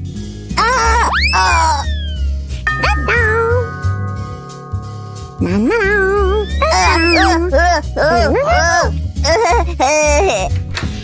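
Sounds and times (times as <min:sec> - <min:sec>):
background music: 0:00.0 - 0:11.0
squeaky cartoon vocal sound: 0:00.6 - 0:03.7, 0:05.8 - 0:08.9
doorbell-like ringing tone: 0:01.9 - 0:07.1.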